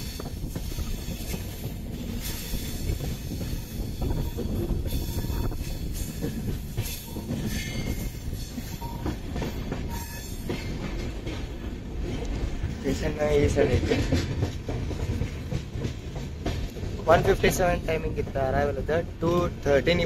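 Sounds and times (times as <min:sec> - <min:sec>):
train wheels rumbling on rails: 0:00.0 - 0:20.0
high wheel squeals: 0:06.8 - 0:09.1.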